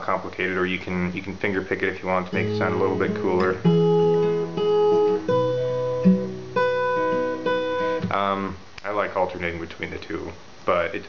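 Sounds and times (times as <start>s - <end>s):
acoustic guitar arpeggio: 2.1s - 8.4s.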